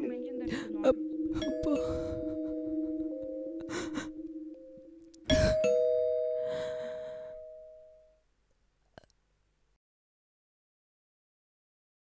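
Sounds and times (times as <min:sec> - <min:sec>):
two-tone doorbell chime: 0:00.0 - 0:08.1
soft breath-like rush: 0:06.4 - 0:07.7.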